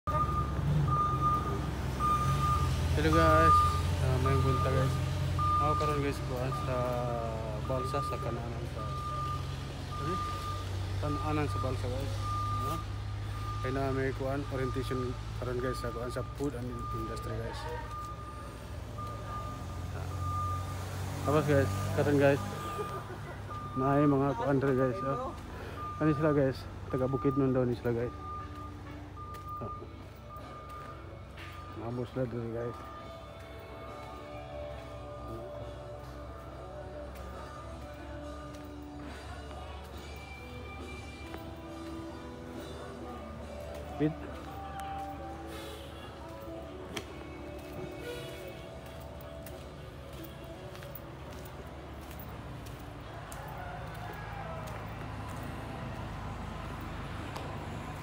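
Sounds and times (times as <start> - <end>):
engine rumbling: 0.0 - 58.0
vehicle reversing alarm beeps: 0.0 - 58.0.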